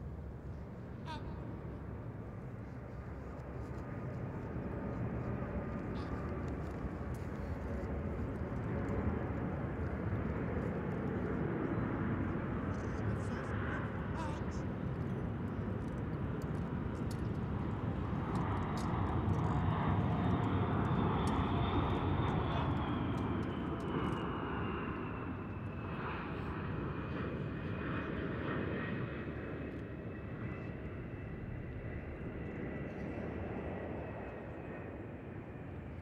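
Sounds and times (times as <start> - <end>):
jet aircraft passing overhead: 0.0 - 36.0.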